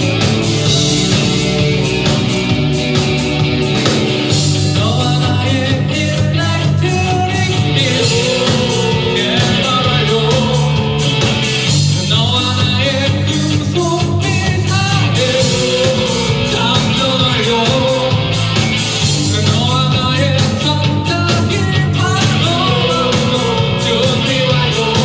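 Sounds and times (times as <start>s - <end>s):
drum kit beat: 0.0s - 25.0s
electric bass: 0.0s - 25.0s
electric guitar: 0.0s - 25.0s
keyboard: 0.0s - 25.0s
male lead vocal singing: 4.3s - 25.0s.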